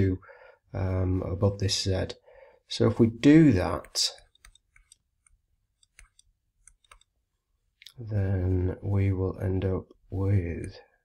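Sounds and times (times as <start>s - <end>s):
stylus tapping tablet screen: 3.4s - 8.0s.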